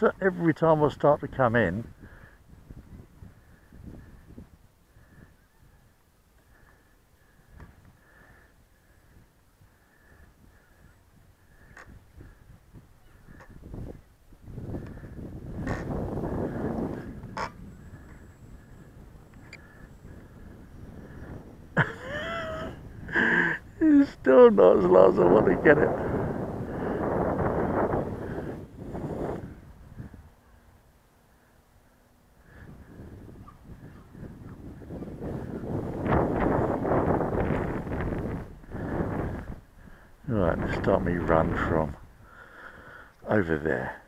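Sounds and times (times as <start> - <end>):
wind buffeting microphone: 0.0 - 30.9, 32.4 - 42.4.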